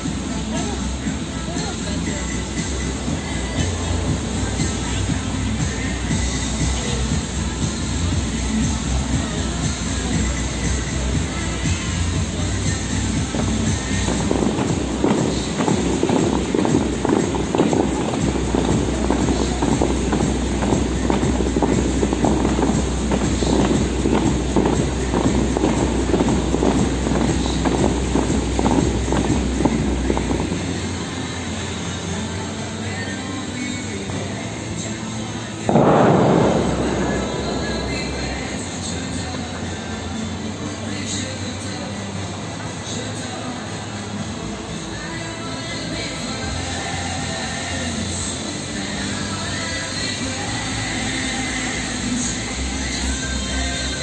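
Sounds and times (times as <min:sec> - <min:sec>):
show music: 0:00.0 - 0:31.6, 0:35.7 - 0:40.5
water jets splashing: 0:00.0 - 0:54.0.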